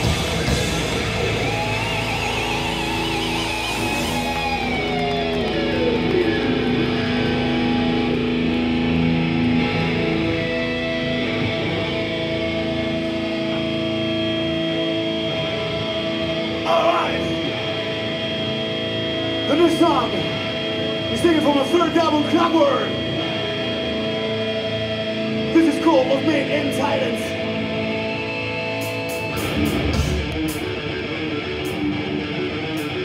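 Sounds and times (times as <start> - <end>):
guitar feedback ringing: 0.0 - 33.0
guitar squeal diving in pitch: 0.5 - 8.6.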